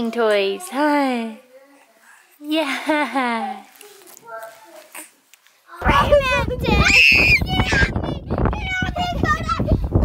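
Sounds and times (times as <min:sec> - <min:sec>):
wind rumbling on microphone: 0:05.8 - 0:10.0.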